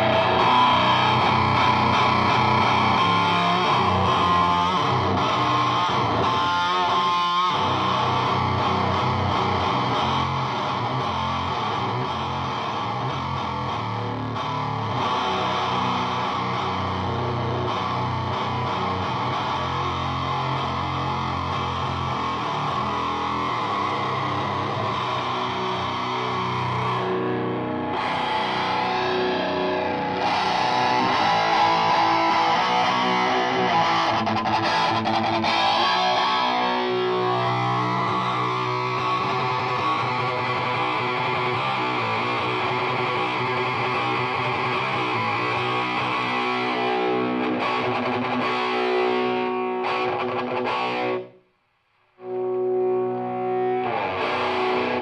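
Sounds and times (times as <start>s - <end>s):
distorted fuzz electric guitar: 0.0s - 55.0s.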